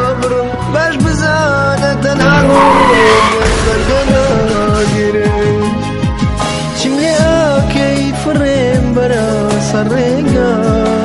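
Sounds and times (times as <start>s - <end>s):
song playing: 2.0s - 8.2s
car tyres screeching: 2.1s - 6.0s.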